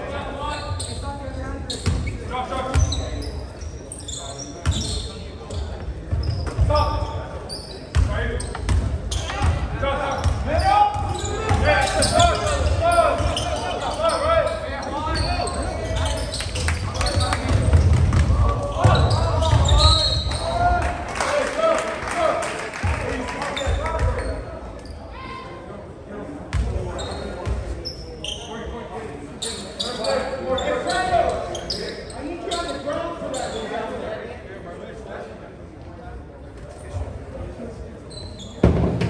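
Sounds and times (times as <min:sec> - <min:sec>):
voices in gym: 0:00.0 - 0:39.0
basketball bouncing on hardwood floor: 0:17.5 - 0:19.7.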